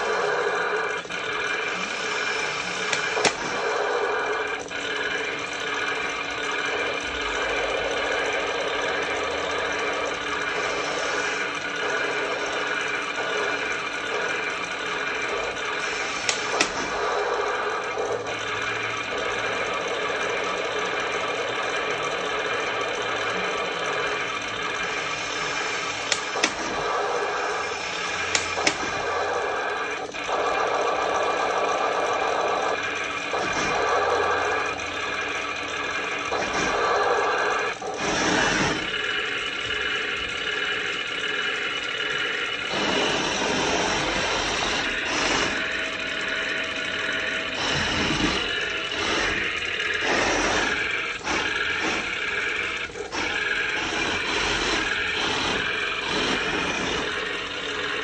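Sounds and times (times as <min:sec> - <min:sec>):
sharp clicks: 0:26.0 - 0:26.9, 0:28.2 - 0:29.2.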